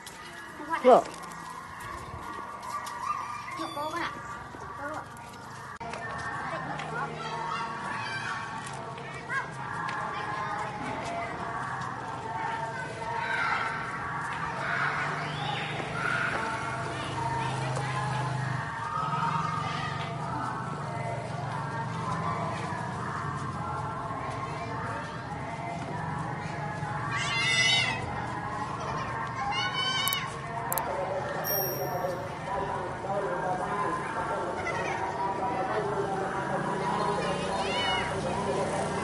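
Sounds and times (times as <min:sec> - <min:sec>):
children's high-pitched voices: 0:01.6 - 0:11.7, 0:27.0 - 0:30.4, 0:37.0 - 0:38.2.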